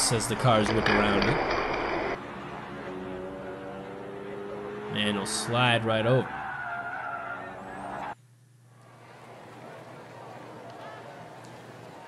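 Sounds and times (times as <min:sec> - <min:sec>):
toy cars rolling on plastic track: 0:00.2 - 0:02.2.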